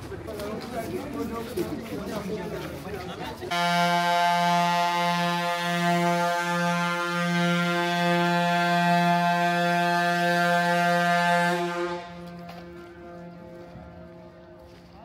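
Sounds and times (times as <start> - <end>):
ship's horn long low blast: 3.5 - 14.8.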